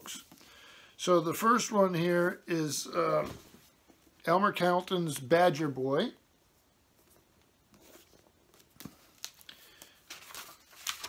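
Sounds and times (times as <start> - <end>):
book pages rustling: 6.9 - 11.0.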